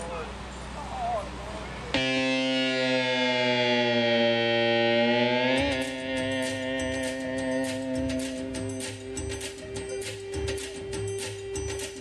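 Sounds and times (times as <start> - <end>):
electronic keyboard held chord: 1.9 - 12.0.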